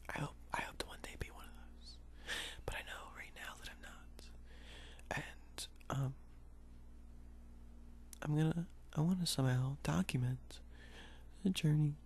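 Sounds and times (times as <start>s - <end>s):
person whispering softly: 0.0s - 2.0s, 2.6s - 4.4s, 5.0s - 6.2s.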